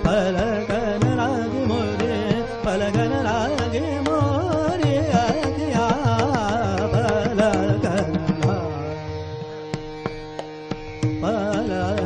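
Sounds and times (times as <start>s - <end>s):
man singing classical vocals: 0.0s - 9.3s, 11.1s - 12.0s
tabla strokes: 0.0s - 12.0s
tanpura drone: 0.0s - 12.0s.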